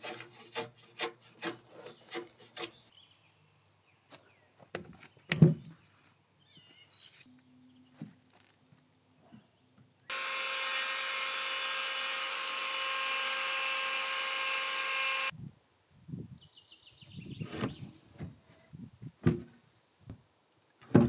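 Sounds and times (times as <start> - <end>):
chainsaw cutting log: 10.1 - 15.3.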